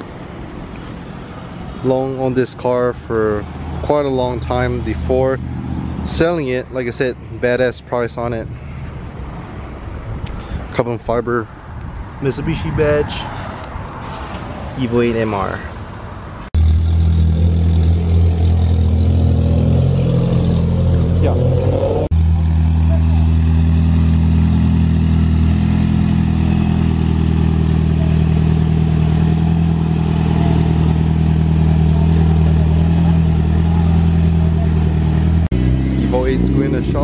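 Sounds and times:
car engines running at low revs: 0:16.6 - 0:37.0.

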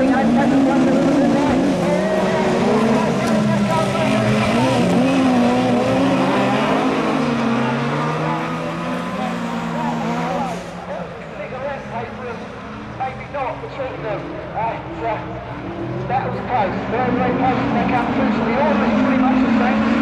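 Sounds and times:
racing car engines revving: 0:00.0 - 0:20.0.

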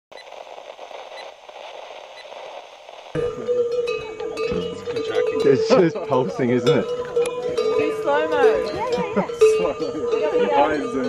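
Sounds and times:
radio static hiss: 0:00.1 - 0:06.6.

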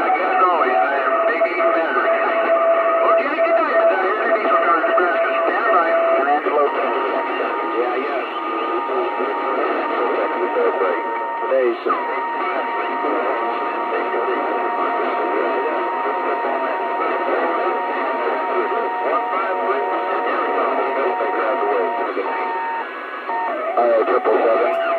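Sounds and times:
radio voices talking over static: 0:00.0 - 0:24.9
steady radio whistle: 0:00.0 - 0:24.9.

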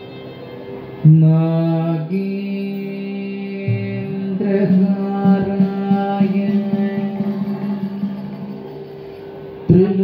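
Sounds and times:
long-held chanted note: 0:00.0 - 0:10.0
steady drone: 0:00.0 - 0:10.0.

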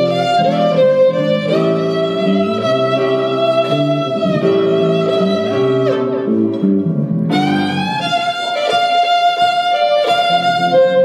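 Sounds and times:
keyboard chords: 0:00.0 - 0:11.0
violin sustained notes: 0:00.0 - 0:11.0.

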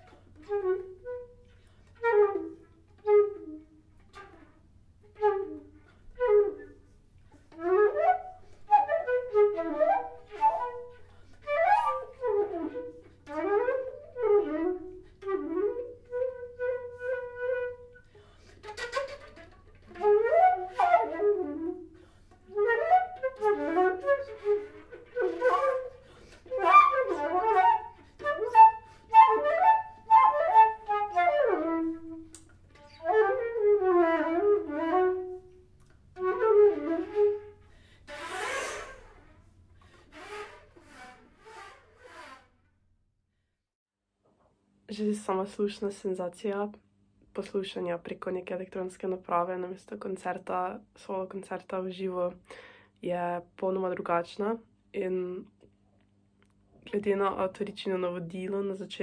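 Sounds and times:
solo flute playing: 0:00.0 - 0:42.5.

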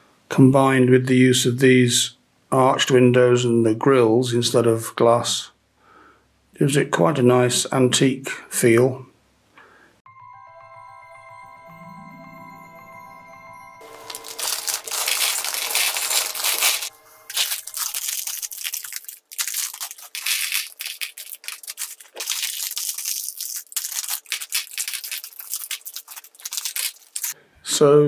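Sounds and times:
mallet music jingle: 0:10.1 - 0:17.9
plastic pieces rattling: 0:13.9 - 0:27.4
plastic bricks clattering: 0:14.0 - 0:27.4.

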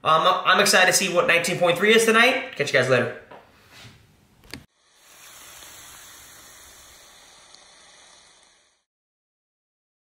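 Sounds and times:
steady hiss of wood burning: 0:04.7 - 0:08.9.

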